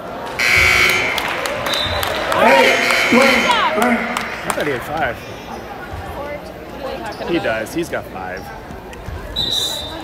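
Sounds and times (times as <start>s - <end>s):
crowd murmur: 0.0s - 10.0s
scoreboard horn buzz: 0.4s - 4.6s.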